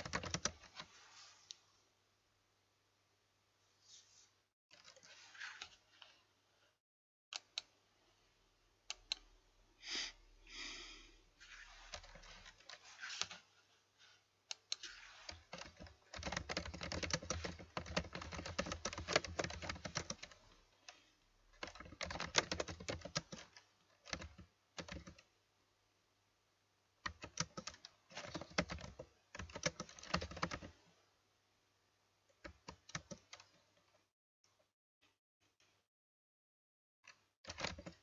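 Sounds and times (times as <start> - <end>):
computer keyboard typing: 0.0 - 0.9, 11.8 - 13.4, 14.5 - 21.0, 21.6 - 25.3, 27.0 - 30.7, 32.4 - 33.6, 37.1 - 38.0.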